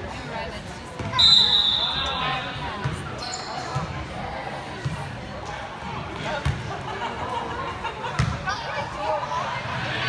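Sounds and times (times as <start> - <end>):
referee's whistle blast: 1.2 - 2.6.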